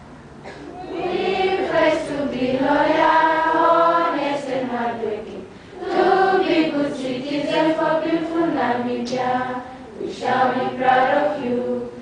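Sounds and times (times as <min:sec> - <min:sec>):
students singing as a choir: 0:00.8 - 0:12.0.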